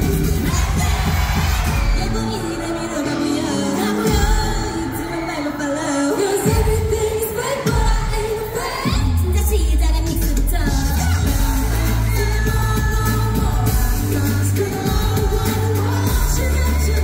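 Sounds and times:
pop backing track with heavy bass: 0.0s - 5.4s, 6.4s - 17.0s
girl group singing live: 0.0s - 17.0s.

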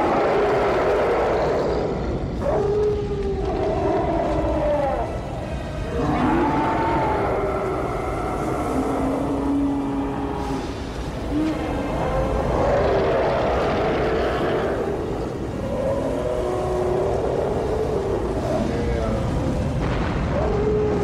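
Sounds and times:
rushing roar: 0.0s - 2.5s, 3.4s - 21.0s
wavering howls: 0.0s - 21.0s.

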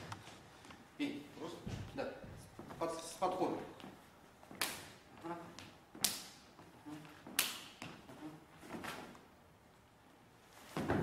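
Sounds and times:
hands slapping forearms: 4.5s - 5.0s, 5.6s - 6.4s, 7.3s - 8.0s.

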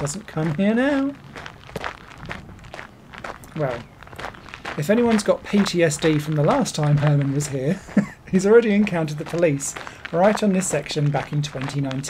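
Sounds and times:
footsteps crunching on gravel: 0.0s - 12.0s.

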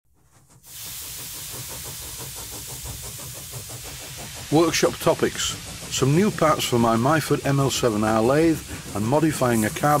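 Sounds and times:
steady hiss: 0.4s - 10.0s.

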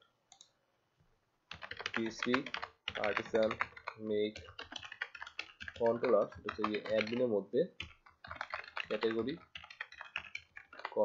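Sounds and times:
keyboard typing clicks: 1.5s - 11.0s
person speaking: 1.5s - 11.0s.

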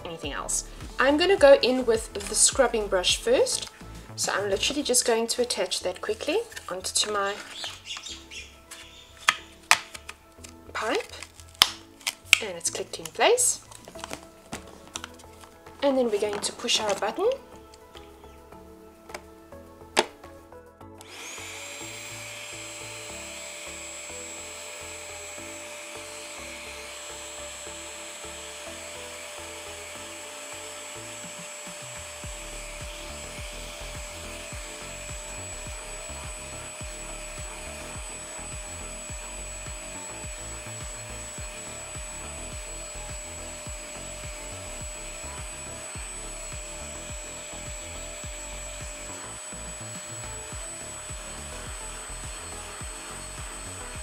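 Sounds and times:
spot cleaner humming: 0.0s - 54.0s.

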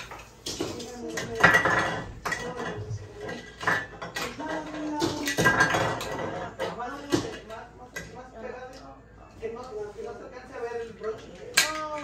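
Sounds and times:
dishes and cutlery clattering: 0.0s - 8.2s, 11.0s - 12.0s.

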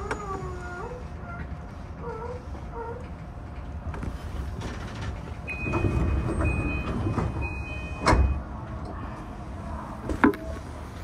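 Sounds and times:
train rumble: 0.0s - 11.0s.

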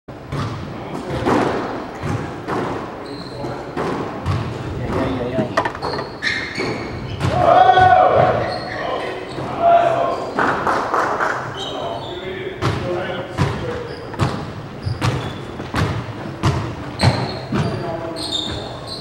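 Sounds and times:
ball hitting walls and floor: 0.3s - 8.4s, 12.6s - 18.8s
racquet hitting ball: 12.6s - 17.8s.

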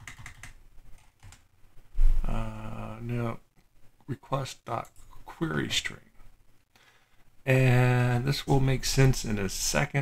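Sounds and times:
computer keyboard typing: 0.0s - 1.4s.

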